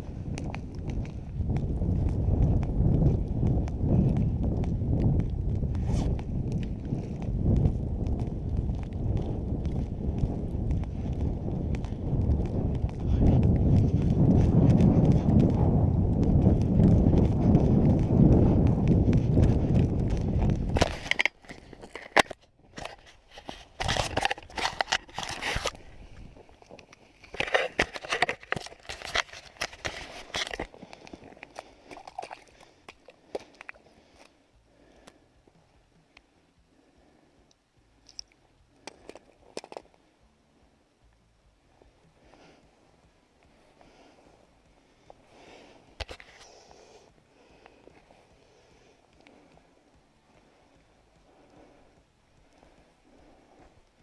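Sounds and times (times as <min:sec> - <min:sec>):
footsteps crunching through snow: 0:00.0 - 0:22.2, 0:22.8 - 0:34.2
snow crunching and scraping: 0:00.0 - 0:31.9.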